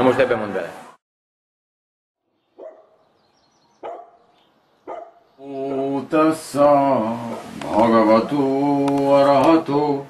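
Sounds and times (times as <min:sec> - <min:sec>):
dog barking: 0:02.6 - 0:03.0, 0:03.8 - 0:05.2
man chanting: 0:05.4 - 0:10.0.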